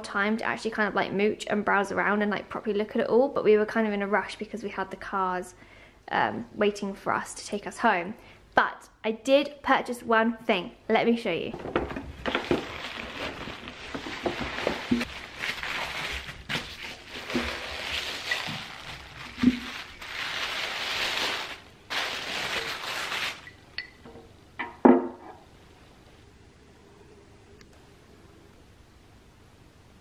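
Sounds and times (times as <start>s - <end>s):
paper bag and tissue rustling: 11.6s - 23.6s.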